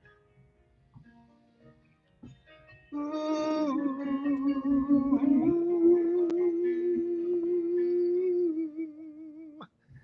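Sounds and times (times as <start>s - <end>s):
man singing held note: 3.0s - 9.6s.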